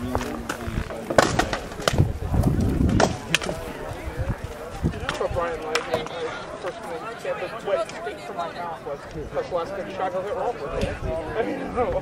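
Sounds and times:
faint voices: 0:00.0 - 0:12.0
sharp wooden knocks: 0:00.5 - 0:02.0, 0:02.8 - 0:03.5.

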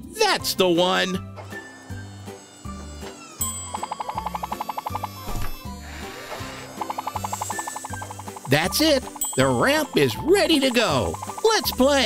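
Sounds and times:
light cartoon music: 0:00.0 - 0:12.0
rapid ratchet-like clicks: 0:03.4 - 0:05.3, 0:06.6 - 0:12.0.

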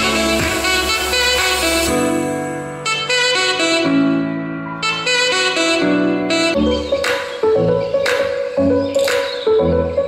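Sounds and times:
instrumental music through speaker: 0:00.0 - 0:10.0.

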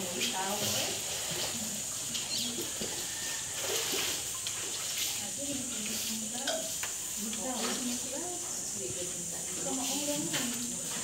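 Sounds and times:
pool water splashing: 0:00.0 - 0:11.0.

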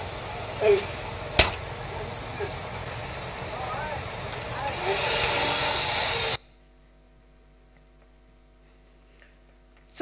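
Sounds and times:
loud even rushing noise: 0:00.0 - 0:06.4
faint steady hum: 0:00.0 - 0:10.0.

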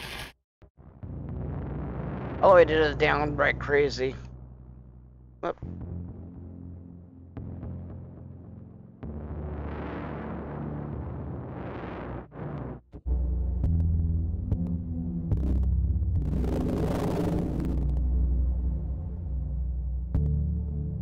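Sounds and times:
distorted synthesizer drone: 0:00.8 - 0:21.0.

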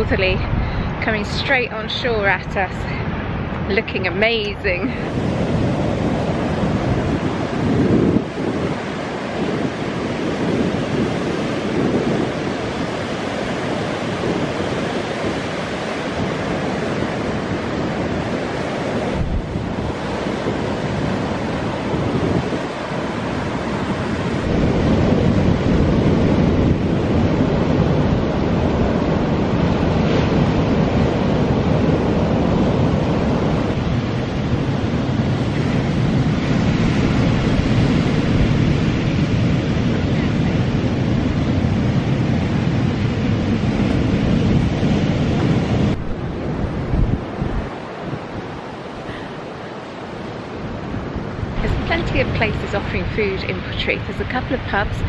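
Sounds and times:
surf breaking on beach: 0:00.0 - 0:55.0
wind buffeting microphone: 0:00.0 - 0:55.0.

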